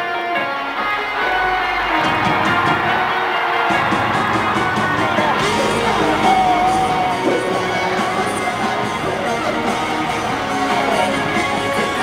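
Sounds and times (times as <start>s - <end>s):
rock band playing live: 0.0s - 12.0s
drum and cymbal hits: 0.8s - 12.0s.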